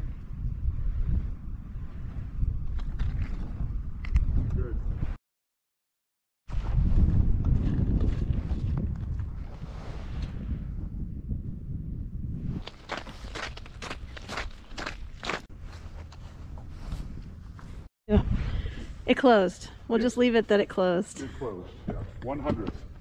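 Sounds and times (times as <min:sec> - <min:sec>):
wind buffeting microphone: 0:00.0 - 0:05.2, 0:06.5 - 0:20.5, 0:21.4 - 0:23.0
footsteps on icy snowy pavement: 0:12.5 - 0:17.9.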